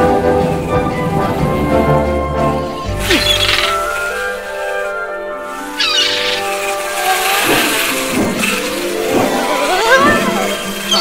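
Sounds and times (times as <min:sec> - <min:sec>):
film score music: 0:00.0 - 0:11.0
rising squeaky pitch glides: 0:02.8 - 0:04.4, 0:05.5 - 0:11.0
high chirping call: 0:03.0 - 0:04.0, 0:05.7 - 0:06.8.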